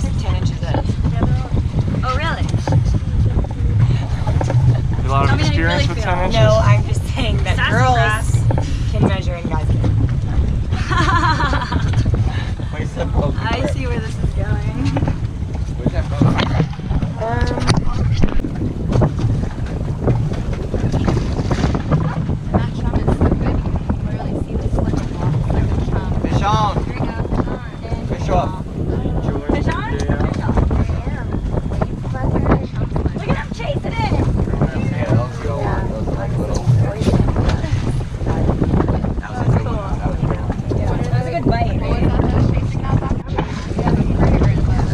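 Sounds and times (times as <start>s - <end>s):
boat noise: 0.0s - 44.9s
voices: 0.0s - 44.9s
wind rumble: 0.0s - 44.9s.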